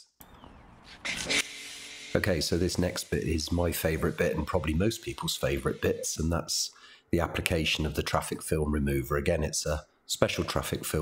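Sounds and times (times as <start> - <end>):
pressure washer spraying water: 1.2 - 6.1.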